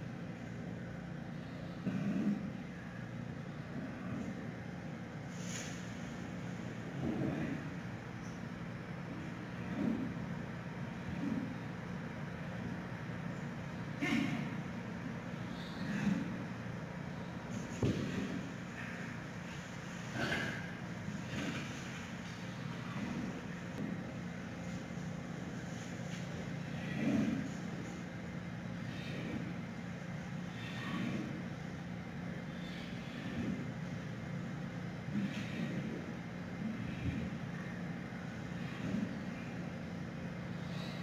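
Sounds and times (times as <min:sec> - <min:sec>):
low mechanical hum: 0:00.0 - 0:41.0.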